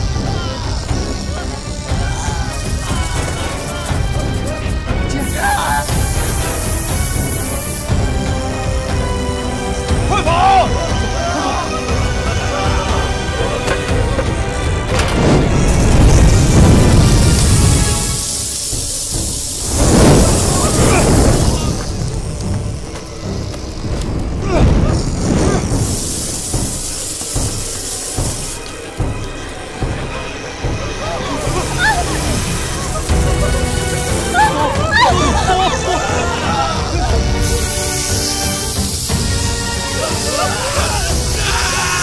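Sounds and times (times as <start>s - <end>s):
people shouting and screaming: 0.0s - 6.3s, 10.0s - 14.5s, 19.8s - 22.4s, 24.2s - 25.8s, 29.8s - 37.8s, 39.7s - 42.0s
tense music score: 0.0s - 42.0s
booming and crashing effects: 12.9s - 27.8s.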